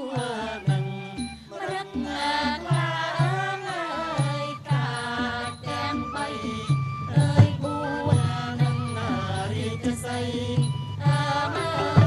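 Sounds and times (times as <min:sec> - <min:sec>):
chanted vocal line: 0:00.0 - 0:12.0
traditional music accompaniment: 0:00.0 - 0:12.0.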